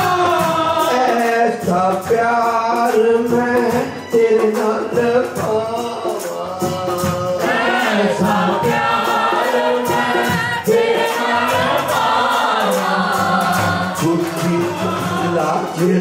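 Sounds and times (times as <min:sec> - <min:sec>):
congregation singing devotional song: 0:00.0 - 0:16.0
hand drum beat: 0:00.0 - 0:16.0
hand-clapping: 0:10.7 - 0:16.0.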